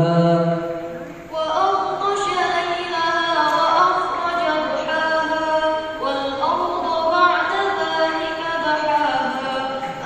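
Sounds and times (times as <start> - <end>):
girl reciting melodically: 0.8 - 10.0.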